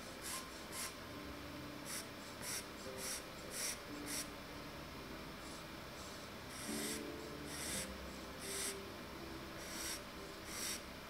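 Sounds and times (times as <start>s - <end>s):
pencil scratching on paper: 1.9s - 4.3s, 6.0s - 8.7s, 9.6s - 10.8s.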